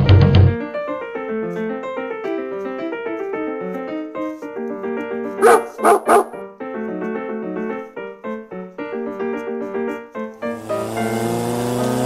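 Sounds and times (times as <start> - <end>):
piano background music: 0.0 - 12.0
small dog barking: 5.4 - 6.4.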